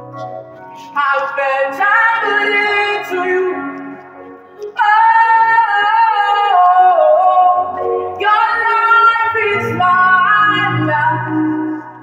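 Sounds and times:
woman singing slow worship song: 0:00.7 - 0:12.0.

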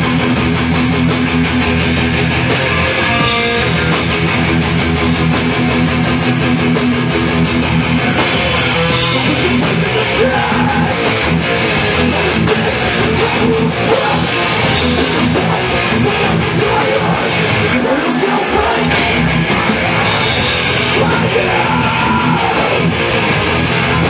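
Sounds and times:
thrash metal band playing live: 0:00.0 - 0:24.0.

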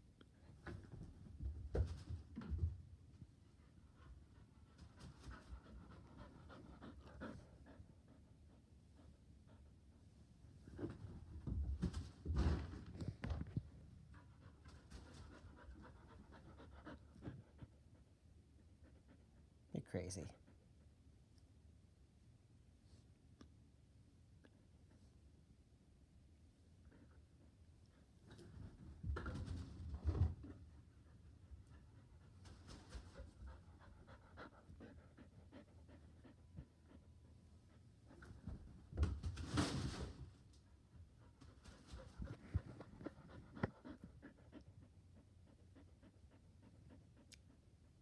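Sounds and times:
dog panting: 0:03.5 - 0:10.3, 0:14.1 - 0:19.7, 0:30.7 - 0:38.8, 0:40.8 - 0:48.0.

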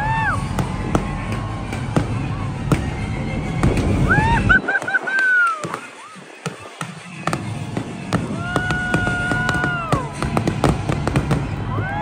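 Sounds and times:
low rumble: 0:00.0 - 0:04.7
fireworks bangs: 0:00.0 - 0:12.0.

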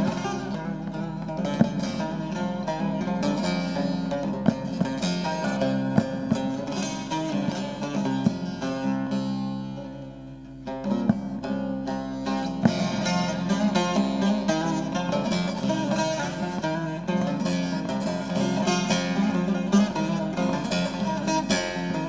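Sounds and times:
long-necked lute playing: 0:00.0 - 0:22.0.

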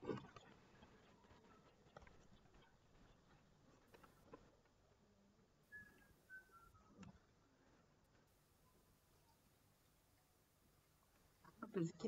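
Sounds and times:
faint high chirps: 0:05.6 - 0:07.1, 0:08.3 - 0:11.1.

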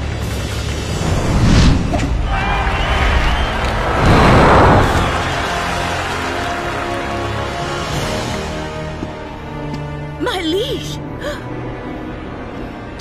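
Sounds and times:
soundtrack music: 0:00.0 - 0:13.0
loud whooshing effects: 0:00.9 - 0:06.2.

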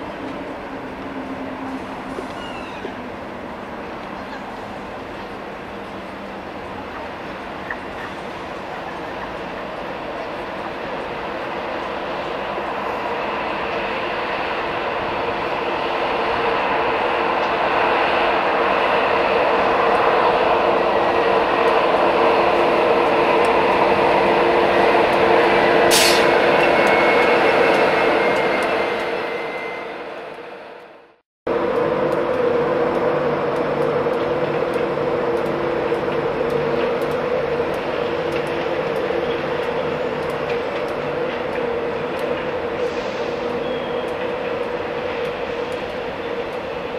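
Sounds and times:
diesel locomotive engine: 0:00.0 - 0:46.9
electric train passing: 0:00.0 - 0:46.9.

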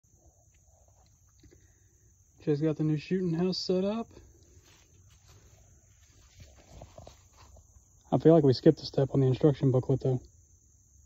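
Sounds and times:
footsteps in dry leaves: 0:04.5 - 0:07.6.

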